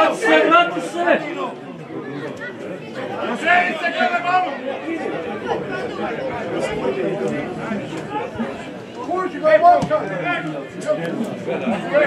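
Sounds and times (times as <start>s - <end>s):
men talking and calling: 0.0s - 12.0s.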